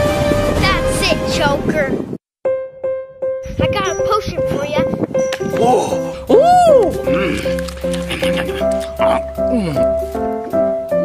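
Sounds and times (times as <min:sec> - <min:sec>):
background music melody: 0:00.0 - 0:11.0
swoop sound effect: 0:06.3 - 0:07.0.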